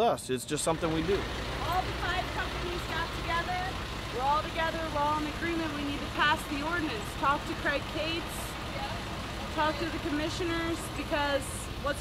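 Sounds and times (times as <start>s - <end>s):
people talking: 0.0s - 12.0s
vehicle engine idling: 0.4s - 12.0s.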